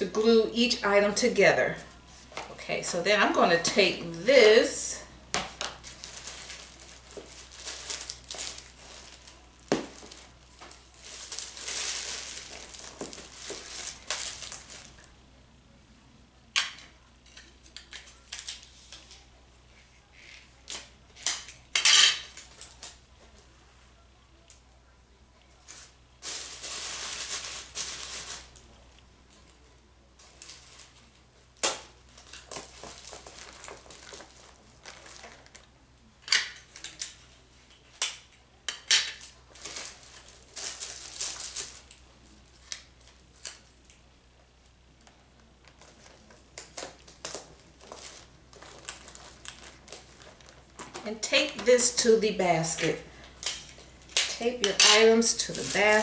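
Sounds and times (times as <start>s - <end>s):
tape rustling and tearing: 5.4s - 15.1s, 17.3s - 19.2s, 39.2s - 44.0s, 45.6s - 51.8s, 52.8s - 56.0s.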